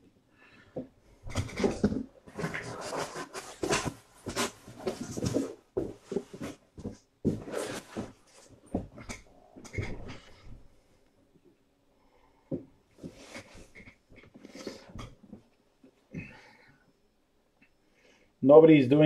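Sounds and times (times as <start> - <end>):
cardboard boxes rustling and scraping: 1.3 - 9.0.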